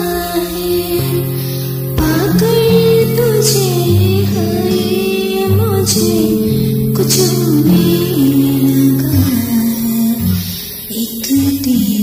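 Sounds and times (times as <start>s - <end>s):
instrumental guitar music: 0.0s - 12.0s.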